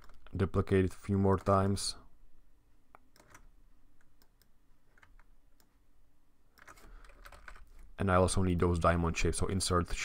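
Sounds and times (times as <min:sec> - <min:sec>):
computer keyboard keys tapping: 0:02.9 - 0:05.7, 0:06.6 - 0:07.8.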